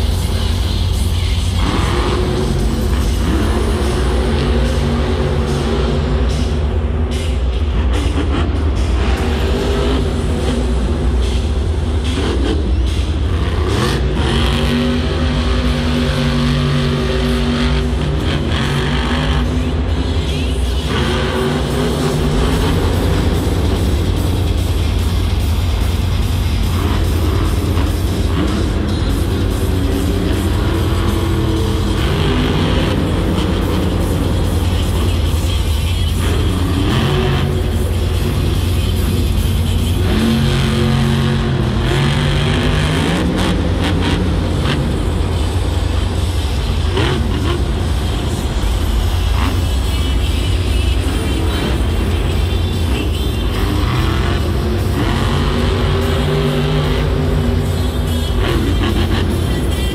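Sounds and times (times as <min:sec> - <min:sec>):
loud arena music: 0:00.0 - 0:59.9
monster truck engine revving: 0:00.0 - 0:59.9.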